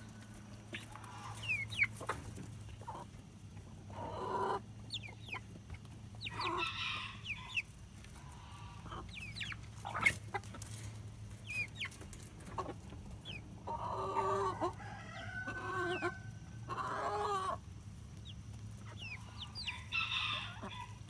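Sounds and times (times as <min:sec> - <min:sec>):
high falling chicken calls: 0:00.0 - 0:02.4, 0:03.9 - 0:17.6, 0:18.9 - 0:21.0
chickens clucking: 0:00.0 - 0:21.0
chicken squawk: 0:00.7 - 0:02.3, 0:06.2 - 0:10.6, 0:13.6 - 0:17.6, 0:18.9 - 0:21.0.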